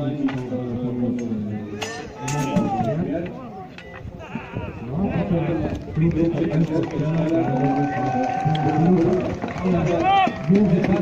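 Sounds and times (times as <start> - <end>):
crowd voices calling out: 1.6 - 3.1.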